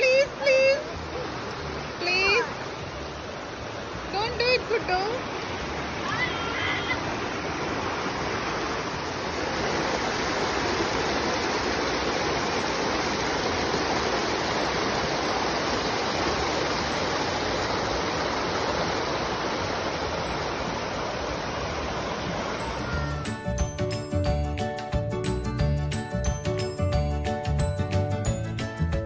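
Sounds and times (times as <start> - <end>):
stream rushing over stones: 0.0 - 23.5.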